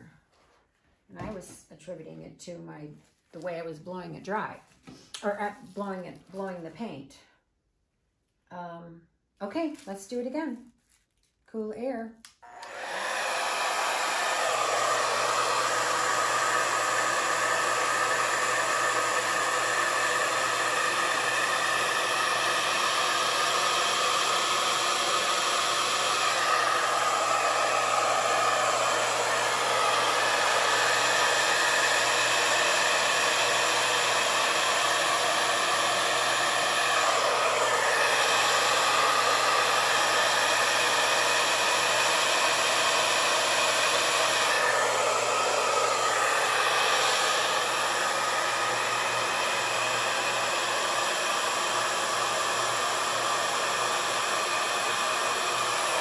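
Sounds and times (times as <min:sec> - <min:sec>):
hair dryer blowing air: 0:12.3 - 0:56.0.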